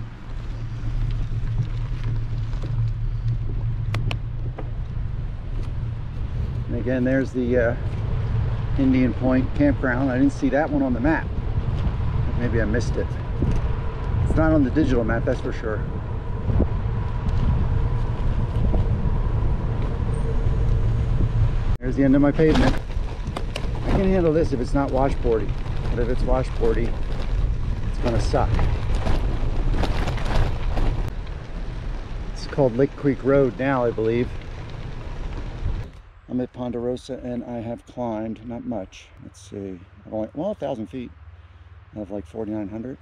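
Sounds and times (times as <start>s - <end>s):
wind buffeting microphone: 0.0s - 36.3s.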